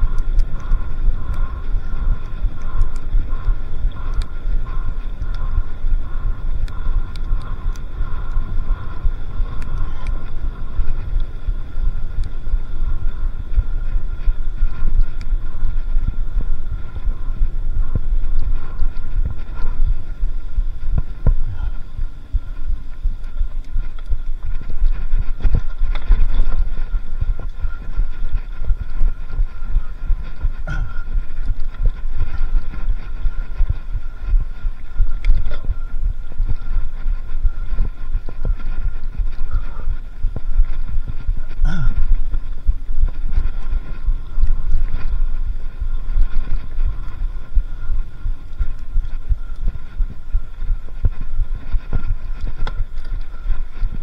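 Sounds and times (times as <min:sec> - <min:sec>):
bike tyres rumbling on dirt: 0:00.0 - 0:54.0
wind on microphone: 0:00.0 - 0:54.0.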